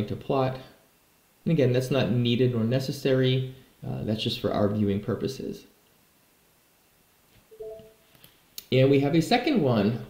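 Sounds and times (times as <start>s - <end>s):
two-note notification chime: 7.6s - 8.0s.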